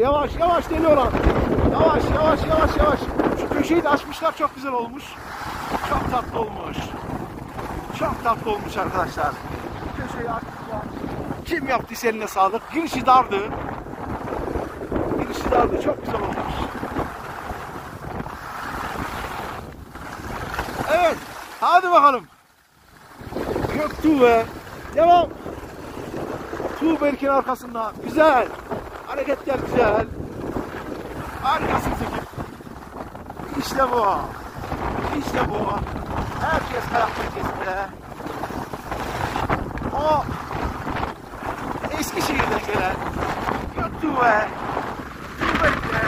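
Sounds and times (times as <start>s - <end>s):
wind buffeting microphone: 0.0s - 46.0s
skis sliding on snow: 14.2s - 32.8s, 36.1s - 46.0s.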